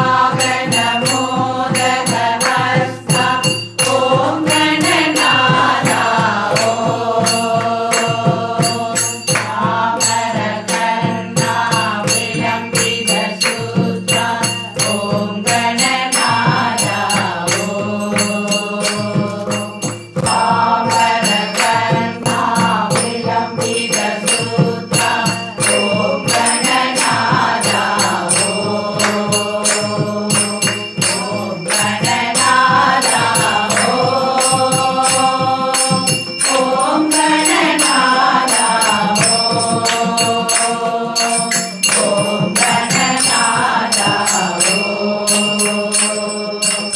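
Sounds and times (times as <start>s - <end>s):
barrel drum beat: 0.0s - 46.9s
group singing devotional chant: 0.0s - 46.9s
sharp percussion strokes: 0.0s - 46.9s
hand claps: 1.8s - 3.3s, 4.2s - 9.6s, 13.4s - 23.2s, 25.6s - 46.9s.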